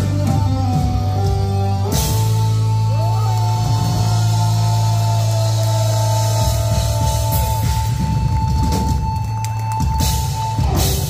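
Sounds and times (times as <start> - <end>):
drum fills: 0.0 - 11.0
heavy metal band playing live: 0.0 - 11.0.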